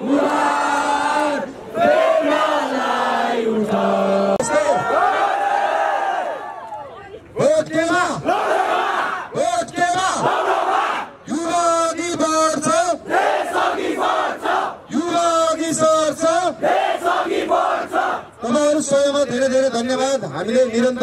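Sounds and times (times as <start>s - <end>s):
crowd chanting: 0.0s - 6.4s, 8.2s - 9.3s, 10.2s - 11.2s, 13.1s - 14.9s, 16.6s - 18.3s.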